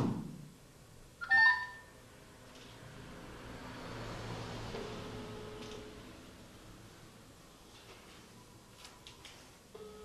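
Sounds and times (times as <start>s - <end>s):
low phone ringing tone: 4.8s - 6.0s, 9.8s - 10.0s
electronic dialing tones: 4.9s - 6.0s, 9.8s - 10.0s.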